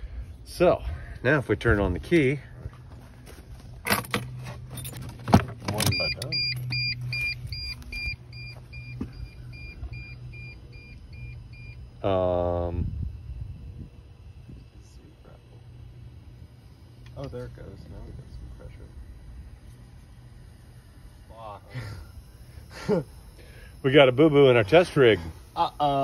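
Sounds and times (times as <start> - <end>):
electric fuel pump humming: 0.0 - 26.0
electronic warning beeps: 5.6 - 13.7, 20.4 - 26.0.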